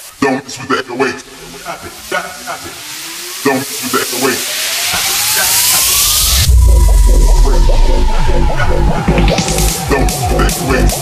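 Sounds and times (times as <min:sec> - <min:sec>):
hiss riser: 0:00.0 - 0:11.0
rising synth sweep: 0:00.6 - 0:11.0
short synth stabs: 0:01.0 - 0:11.0
loud heavy bass: 0:05.0 - 0:11.0.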